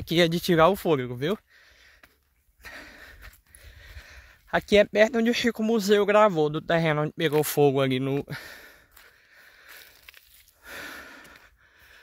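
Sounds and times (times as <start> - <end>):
man breathing heavily: 1.4 - 4.5, 8.2 - 12.0.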